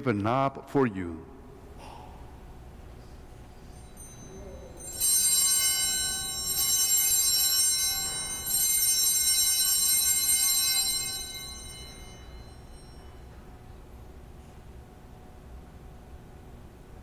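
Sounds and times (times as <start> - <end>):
small bells ringing: 3.4 - 13.9.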